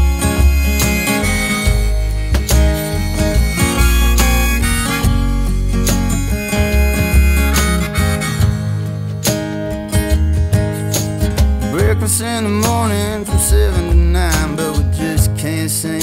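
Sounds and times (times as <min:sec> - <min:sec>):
instrumental country music: 0:00.0 - 0:16.0.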